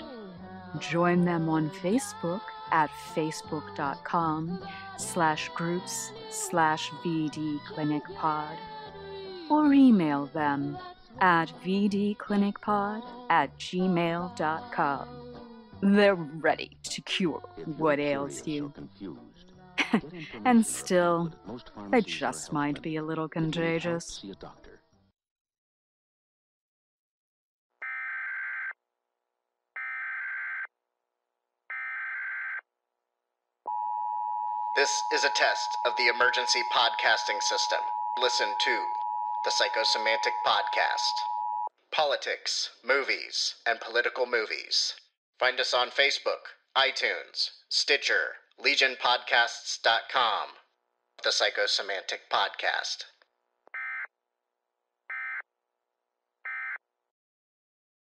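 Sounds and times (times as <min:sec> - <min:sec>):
screeching data tones: 0:33.7 - 0:41.7
two-tone attention signal: 0:33.7 - 0:41.7.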